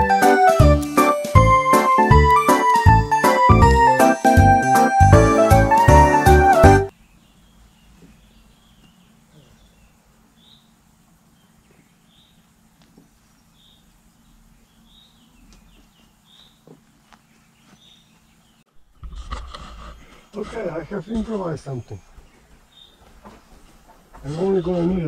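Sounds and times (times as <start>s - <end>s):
background music: 0.0s - 6.9s
faint bird chirps: 6.9s - 18.6s
rustling handling noise: 15.4s - 25.0s.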